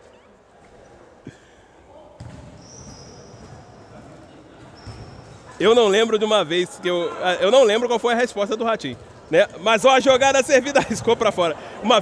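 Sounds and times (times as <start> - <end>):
shoe squeaks on court floor: 0.0 - 0.9, 2.2 - 3.9, 4.6 - 5.6
ball thump: 2.2 - 2.5.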